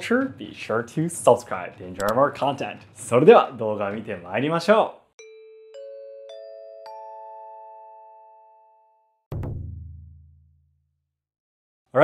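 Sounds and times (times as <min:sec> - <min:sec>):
rising bell-like chime jingle: 0:05.2 - 0:09.2.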